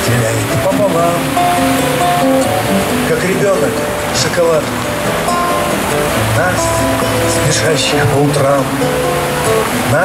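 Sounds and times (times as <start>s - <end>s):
live song over loudspeakers: 0.0s - 10.0s
steady noisy haze: 0.0s - 10.0s.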